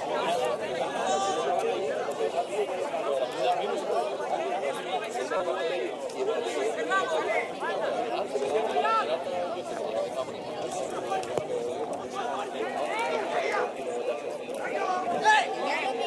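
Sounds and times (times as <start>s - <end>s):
chatter of spectators: 0.0s - 16.0s.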